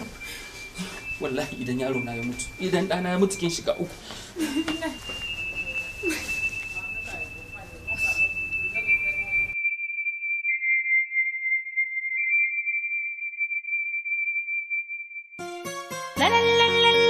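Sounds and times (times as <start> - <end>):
high pure electronic tones: 0.0 - 15.4
woman crying: 4.4 - 5.1, 6.0 - 6.6.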